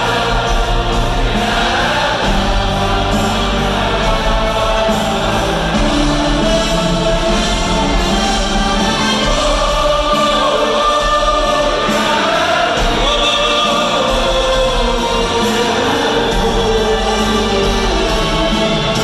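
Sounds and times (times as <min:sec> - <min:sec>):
audience singing along: 0:00.0 - 0:19.0
man singing live: 0:00.0 - 0:19.0
orchestra playing: 0:00.0 - 0:19.0.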